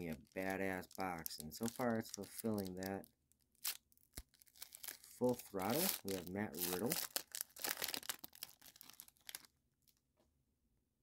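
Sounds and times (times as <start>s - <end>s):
foil wrapper tearing and crinkling: 0.0s - 9.5s.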